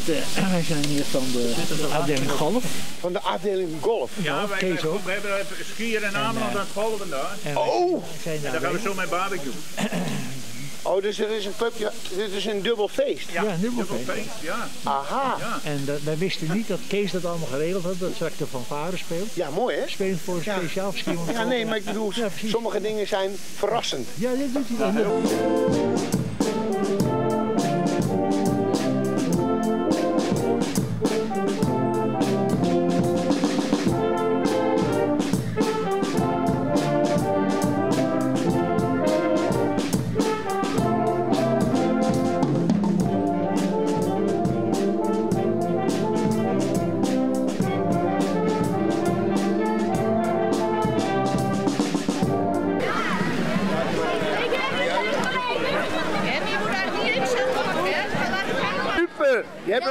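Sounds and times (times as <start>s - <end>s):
steady drum beat: 0.0s - 58.6s
crowd chatter: 0.0s - 59.9s
wind band with trombones and trumpets: 0.0s - 59.9s.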